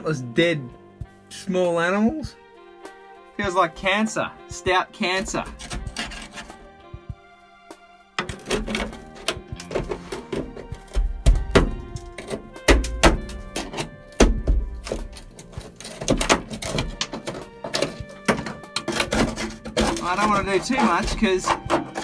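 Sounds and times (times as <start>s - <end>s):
background music with held notes: 0.0s - 22.0s
screwdriver scraping rusted steel: 5.0s - 6.7s, 8.2s - 22.0s
heavy thumps: 8.2s - 22.0s.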